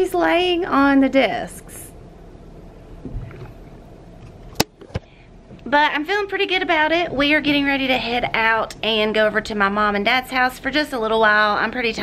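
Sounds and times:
camera handling rumble: 3.0 - 5.1.

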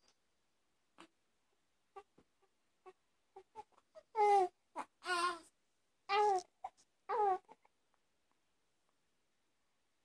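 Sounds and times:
baby crying: 2.0 - 5.5, 6.1 - 7.6.

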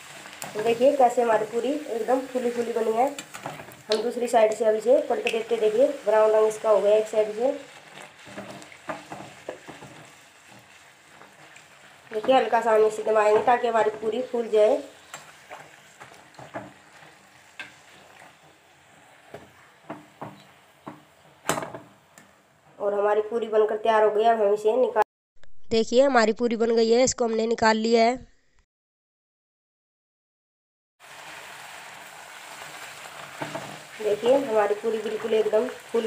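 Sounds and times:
food sizzling in hot oil: 0.0 - 22.9, 31.0 - 36.0.

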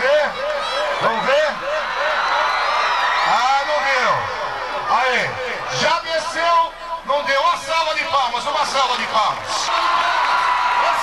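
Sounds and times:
man announcing over loudspeaker: 0.0 - 2.3, 3.2 - 11.0
crowd noise: 0.0 - 11.0.

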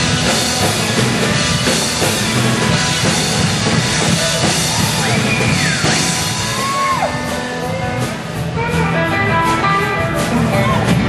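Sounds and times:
rock band music with guitar: 0.0 - 11.0.

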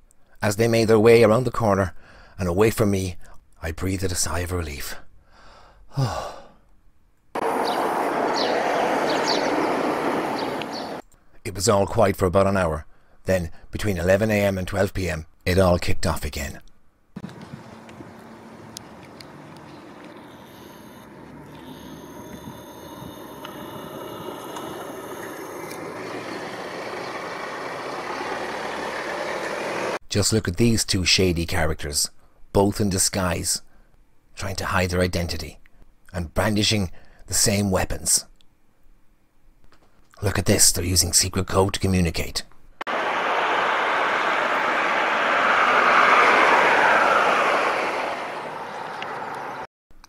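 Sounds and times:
man sighing: 5.4 - 6.6
car approaching: 7.4 - 11.0, 17.2 - 30.0, 42.9 - 49.7
car engine and tyre noise: 7.4 - 11.0, 17.2 - 30.0, 42.9 - 49.7
street ambience hiss: 7.4 - 11.0, 17.2 - 30.0, 42.9 - 49.7.

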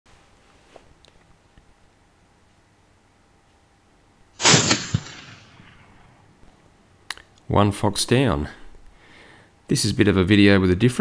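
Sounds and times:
rifle shot: 4.4 - 6.1.

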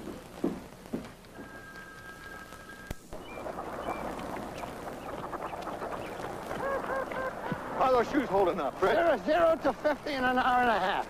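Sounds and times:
geese and ducks honking: 3.3 - 7.9.

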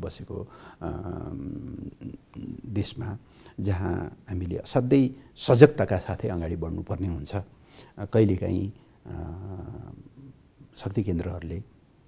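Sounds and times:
man speaking: 0.0 - 11.7.

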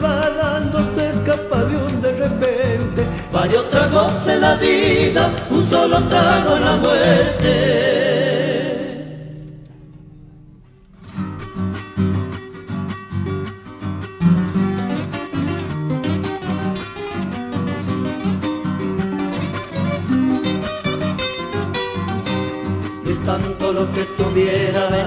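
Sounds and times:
acoustic guitar strumming and picking: 0.0 - 25.0.

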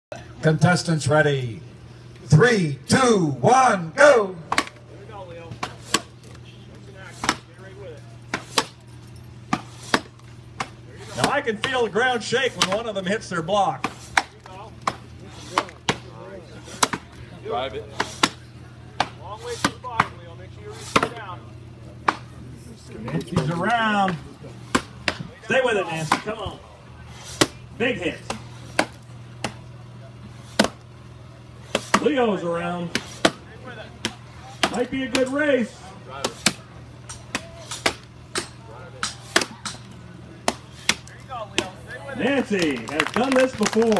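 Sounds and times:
axe chopping a log: 7.2 - 7.5, 9.5 - 11.8, 20.8 - 21.2, 28.3 - 29.6
axes chopping wooden blocks: 9.5 - 11.8, 30.5 - 30.8, 32.9 - 33.4.

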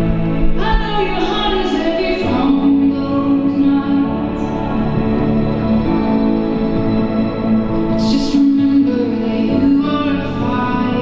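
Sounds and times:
solo voice singing with accompaniment: 7.8 - 11.0.

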